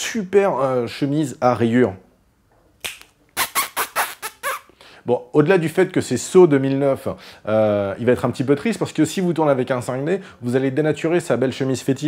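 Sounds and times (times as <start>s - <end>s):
man making squeaky vocal noises: 3.4s - 4.7s.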